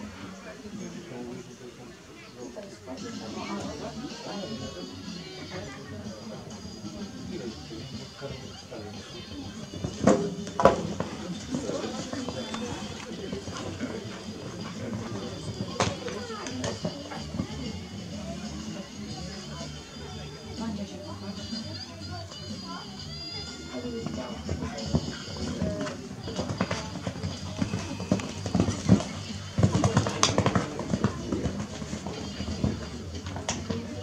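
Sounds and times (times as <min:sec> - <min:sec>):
indistinct talking: 0:00.0 - 0:34.0
horse cantering on sand: 0:09.7 - 0:17.6, 0:23.8 - 0:34.0.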